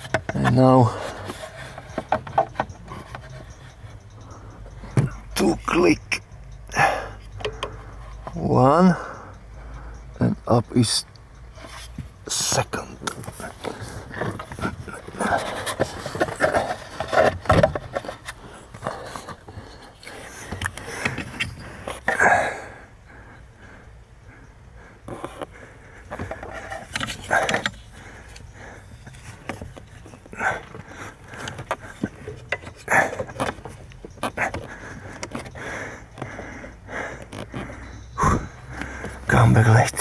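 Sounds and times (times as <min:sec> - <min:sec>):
plastic parts rustling and clicking: 0:00.0 - 0:03.8, 0:13.0 - 0:22.2, 0:26.1 - 0:36.3
heavy breathing: 0:00.1 - 0:05.4, 0:06.6 - 0:10.2, 0:18.0 - 0:39.4.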